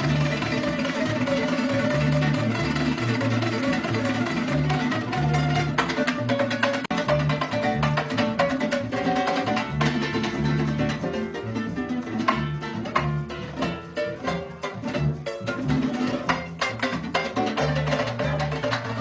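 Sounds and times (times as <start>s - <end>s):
strummed string instruments: 0.0s - 19.0s.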